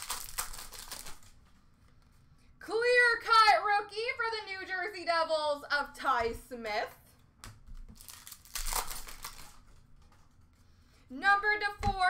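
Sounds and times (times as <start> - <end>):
card and packaging rustle: 0.0 - 2.1, 7.9 - 10.6.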